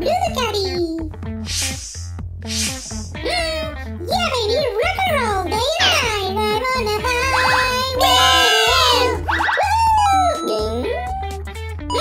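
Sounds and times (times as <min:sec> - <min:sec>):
cartoon background music: 0:00.0 - 0:12.0
high-pitched sliding sounds: 0:01.4 - 0:03.2.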